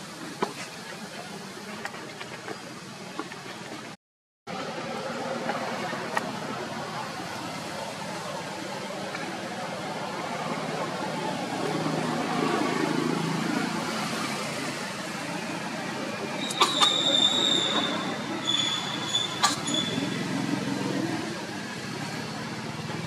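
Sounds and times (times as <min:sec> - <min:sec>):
faint voices: 0:00.0 - 0:23.0
brief high squeaks: 0:16.4 - 0:20.2.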